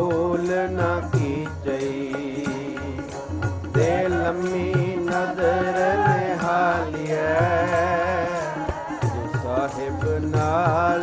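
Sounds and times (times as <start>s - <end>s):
harmonium: 0.0s - 11.0s
tabla beat: 0.0s - 11.0s
voices singing devotional song: 0.0s - 11.0s.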